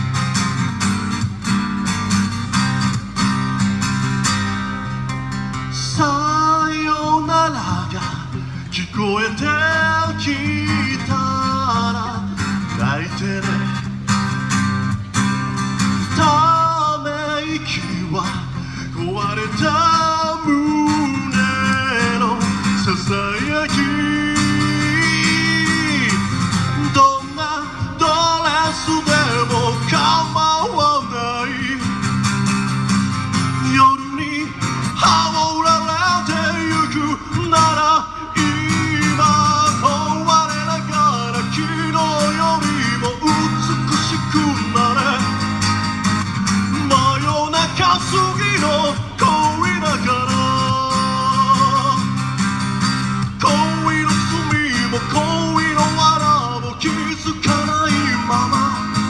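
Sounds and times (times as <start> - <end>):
acoustic guitar: 0.0 - 59.0
person singing into a microphone: 5.6 - 14.0, 16.0 - 32.4, 33.4 - 45.6, 46.6 - 52.4, 53.1 - 59.0.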